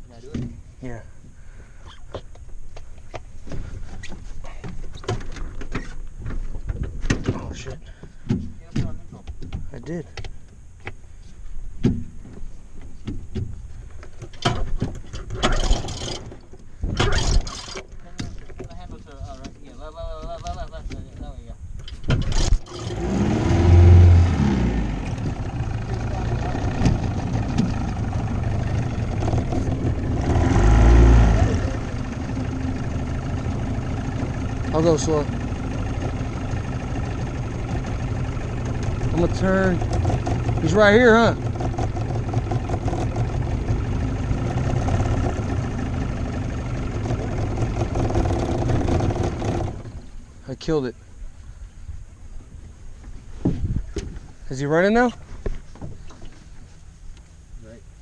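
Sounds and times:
knocks and clicks in metal boat: 0:03.1 - 0:11.0, 0:11.8 - 0:22.6, 0:38.7 - 0:43.4
outboard motor running: 0:13.1 - 0:21.2, 0:21.8 - 0:51.2.

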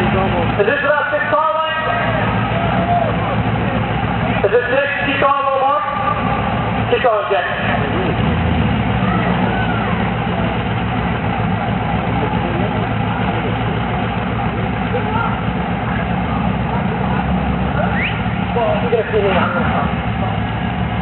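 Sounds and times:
car engines idling: 0:00.0 - 0:21.0.

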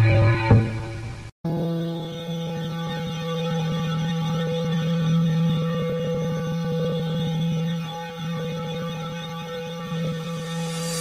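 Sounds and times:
low droning tone: 0:00.0 - 0:11.0.

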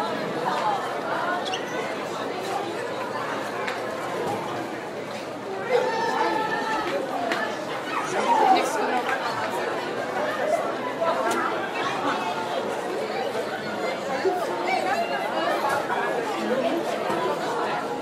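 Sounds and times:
classroom chatter: 0:00.0 - 0:18.0.

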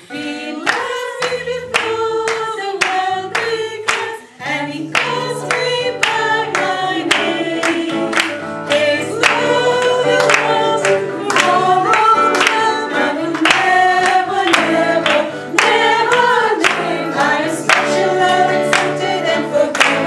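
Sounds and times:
group of people singing: 0:00.0 - 0:20.0
hand claps: 0:00.6 - 0:20.0.

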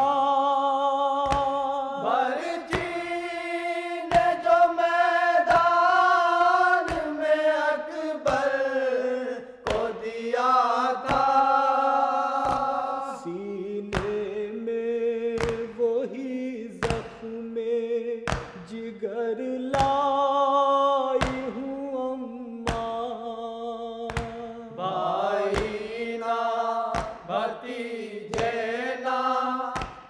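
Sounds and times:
voices chanting a lament: 0:00.0 - 0:30.0.

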